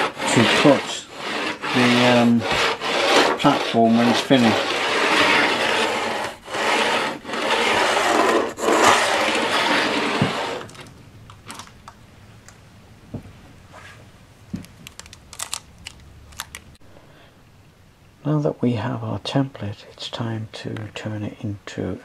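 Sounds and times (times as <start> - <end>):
pencil scratching on wood: 0.0 - 10.8.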